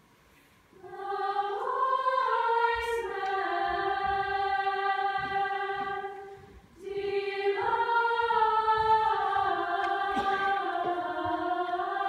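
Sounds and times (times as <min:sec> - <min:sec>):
choir singing held chords: 0:00.7 - 0:12.0.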